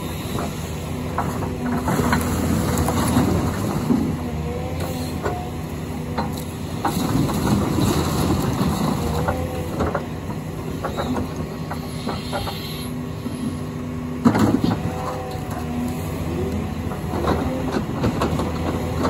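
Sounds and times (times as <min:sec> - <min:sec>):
excavator diesel engine: 0:00.0 - 0:19.0
hydraulic whines: 0:00.0 - 0:19.0.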